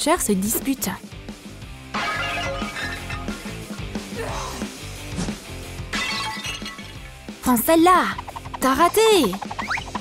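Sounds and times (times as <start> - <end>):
background music: 0.0 - 10.0
plate smashing: 1.9 - 3.6, 5.9 - 7.0.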